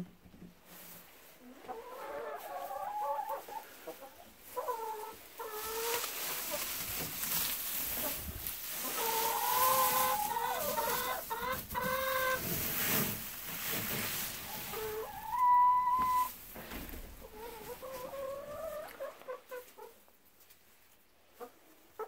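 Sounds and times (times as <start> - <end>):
hens calling: 1.5 - 12.6, 14.2 - 20.0.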